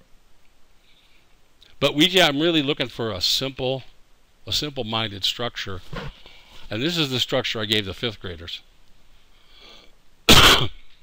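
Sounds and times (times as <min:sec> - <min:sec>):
intake of breath: 0:09.2 - 0:10.0
man coughing: 0:10.3 - 0:10.8.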